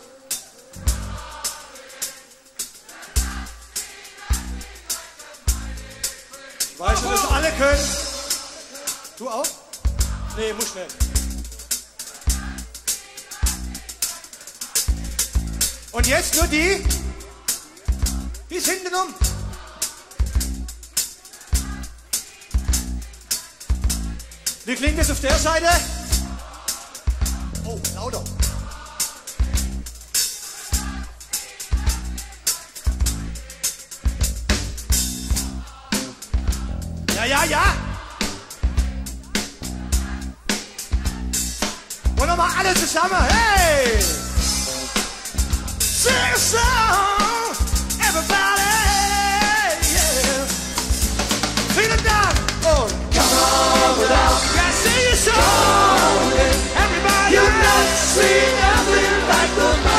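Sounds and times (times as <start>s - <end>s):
live rock band: 0.0s - 59.9s
low bass notes: 9.9s - 11.5s, 27.2s - 28.8s, 34.2s - 40.5s, 41.1s - 47.1s, 47.7s - 59.9s.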